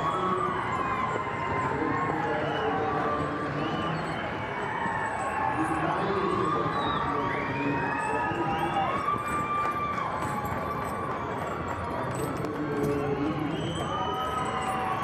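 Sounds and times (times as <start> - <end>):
crowd cheering and whooping: 0.0 - 12.1, 12.9 - 15.0.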